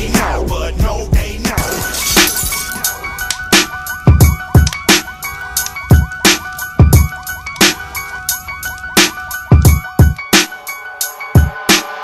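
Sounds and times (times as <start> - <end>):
hip-hop beat: 0.0 - 12.0.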